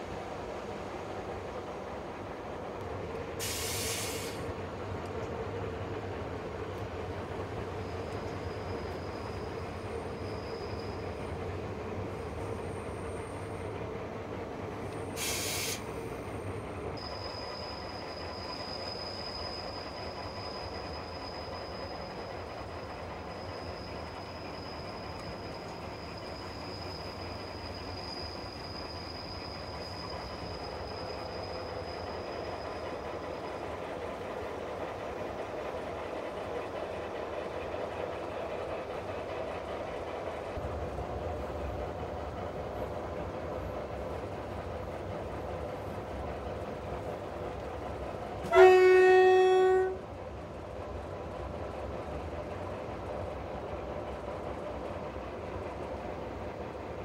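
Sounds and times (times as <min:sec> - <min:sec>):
locomotive engine and wheels: 0:00.0 - 0:57.0
loud train horn blast: 0:48.4 - 0:50.0.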